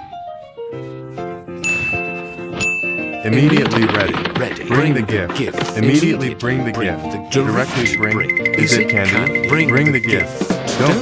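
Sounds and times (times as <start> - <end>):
light background music: 0.0 - 11.0
bright high ding: 1.6 - 3.2.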